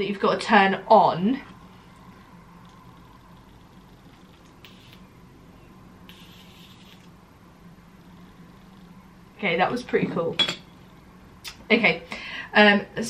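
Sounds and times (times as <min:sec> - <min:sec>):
low steady hum: 0:00.0 - 0:13.0
arc lighter buzzing: 0:01.5 - 0:05.3, 0:06.0 - 0:09.0.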